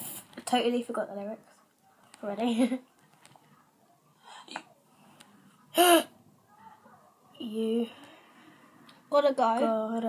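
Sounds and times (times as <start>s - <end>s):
faint breath: 7.8s - 8.9s.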